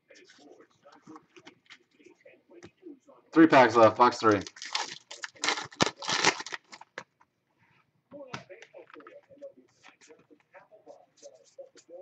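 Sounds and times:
foil wrapper crinkling: 4.4 - 7.0.

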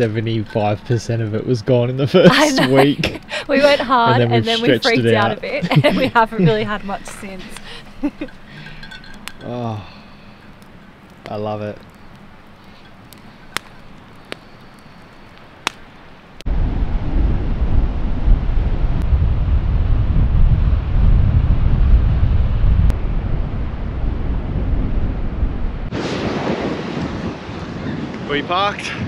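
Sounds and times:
wind buffeting microphone: 16.5 - 29.0.

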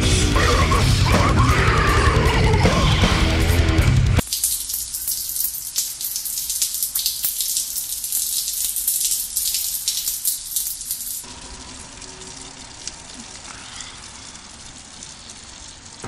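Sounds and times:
urine stream splashing into toilet: 4.2 - 16.0.

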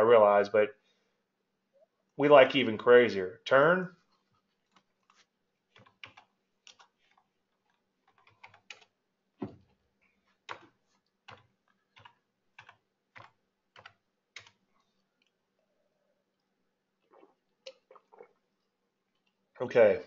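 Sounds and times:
keyboard keystrokes: 11.3 - 14.6.

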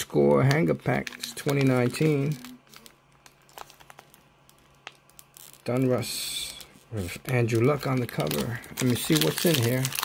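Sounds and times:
plastic wrapper crinkling: 0.0 - 10.0.

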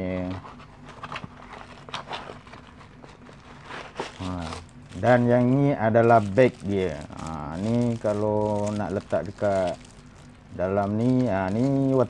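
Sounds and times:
packaging rustling: 0.1 - 12.0.

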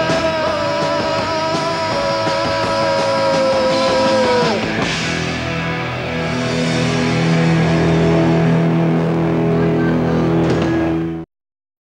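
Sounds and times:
distorted electric guitar chord: 0.0 - 11.2.

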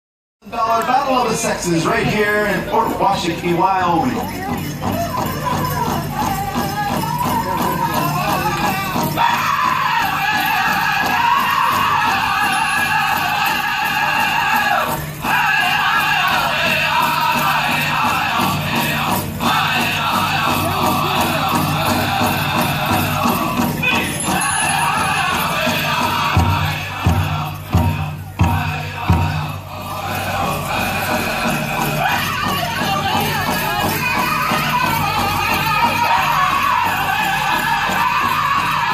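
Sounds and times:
dancers' bells jingling: 0.5 - 38.9
powwow drum: 2.8 - 38.9
group singing in high voices: 4.8 - 38.9.

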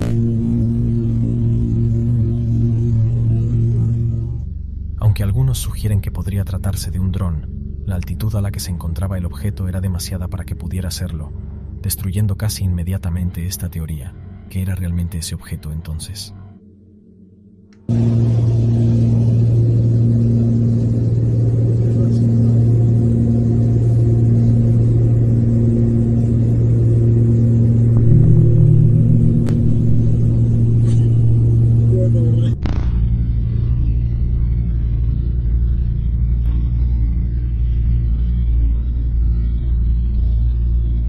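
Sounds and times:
propeller aircraft engine drone: 0.0 - 5.0, 17.8 - 41.0
dull low rumble: 0.0 - 41.0.

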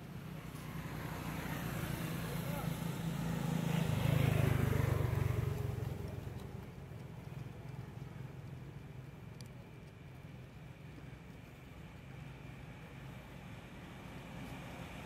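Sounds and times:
vehicle engine passing by: 0.0 - 8.1.

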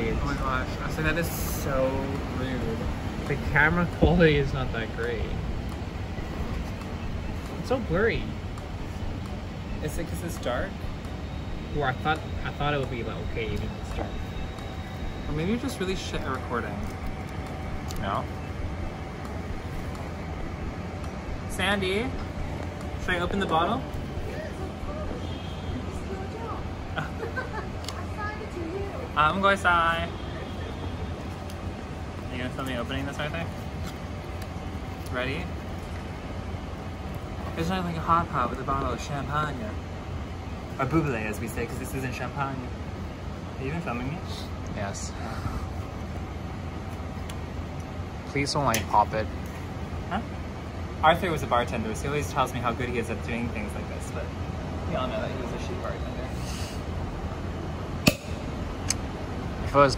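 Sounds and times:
low city background rumble: 0.0 - 59.9.

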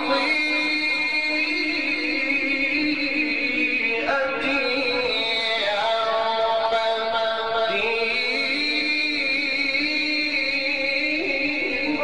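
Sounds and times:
man reciting a long melodic note: 0.0 - 12.0.

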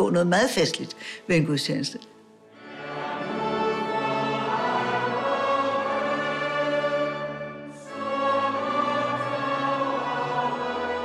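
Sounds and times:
choir singing a hymn: 2.5 - 11.0.

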